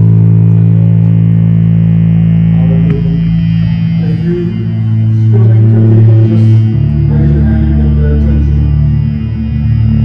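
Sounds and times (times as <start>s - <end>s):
sustained low bass guitar note: 0.0s - 10.0s.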